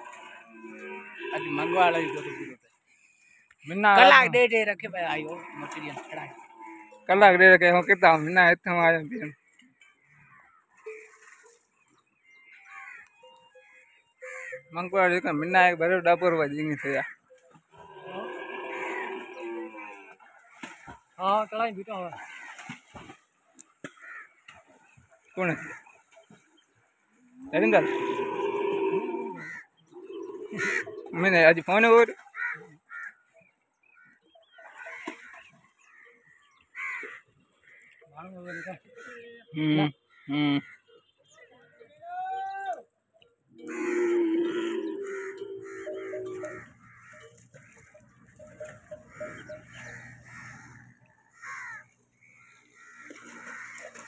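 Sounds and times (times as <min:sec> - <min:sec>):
camel bellowing: 0:00.0 - 0:02.6, 0:17.7 - 0:20.3, 0:27.5 - 0:31.4, 0:43.5 - 0:51.0
camels calling: 0:00.0 - 0:02.6, 0:05.2 - 0:07.1, 0:16.9 - 0:20.4, 0:27.4 - 0:31.8, 0:43.5 - 0:52.0.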